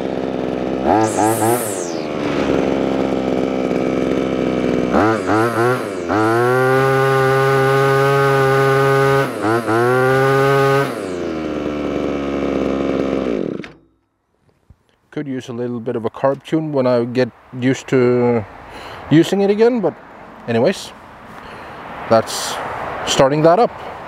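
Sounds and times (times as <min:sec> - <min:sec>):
grass trimmer engine revving: 0:00.0 - 0:13.8.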